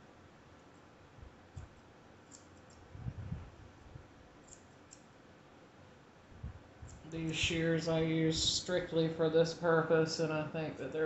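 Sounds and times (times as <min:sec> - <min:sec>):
soft low thumps: 0:03.0 - 0:04.1.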